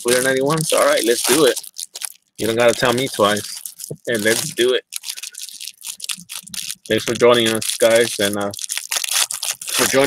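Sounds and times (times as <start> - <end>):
wax paper wrapper crinkling: 0.0 - 10.0.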